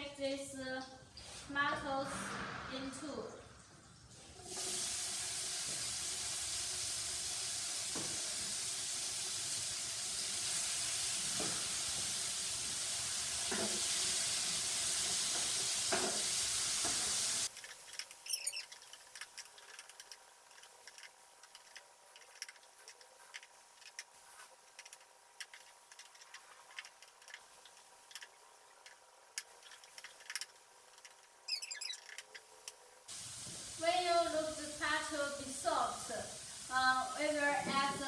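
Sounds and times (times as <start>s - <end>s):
tomatoes sizzling in a pan: 4.1s - 26.7s, 32.4s - 38.0s.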